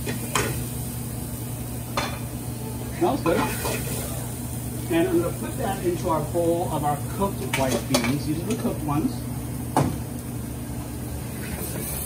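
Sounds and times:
gas burners: 0.0 - 12.0
kitchen drone and hiss: 0.0 - 12.0.

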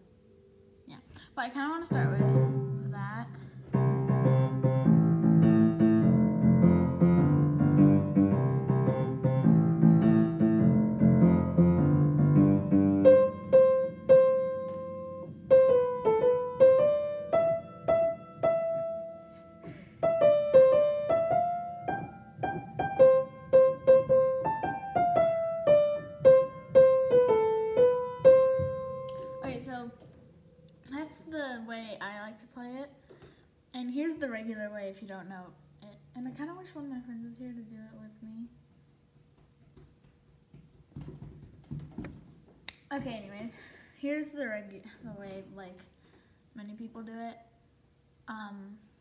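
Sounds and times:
piano playing: 1.8 - 30.8.

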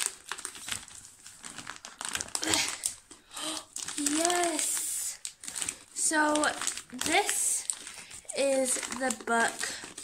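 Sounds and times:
plastic mailing bag crinkling: 0.0 - 10.0.

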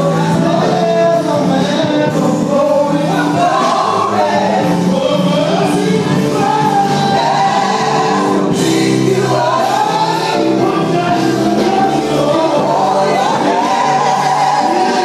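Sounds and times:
instrumental backing: 0.0 - 15.0
male group singing gospel: 0.0 - 15.0.

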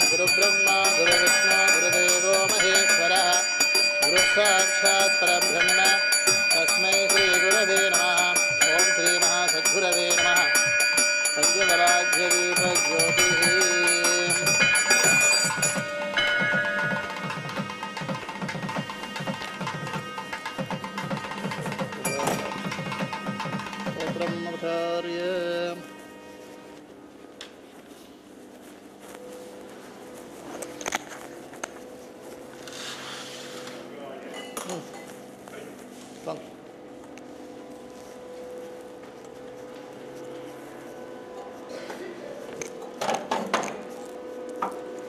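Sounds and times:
person chanting: 0.0 - 10.8, 11.4 - 16.0
bells ringing: 0.0 - 26.5
steady hum: 0.0 - 45.0
fast drum beat: 12.7 - 24.5.

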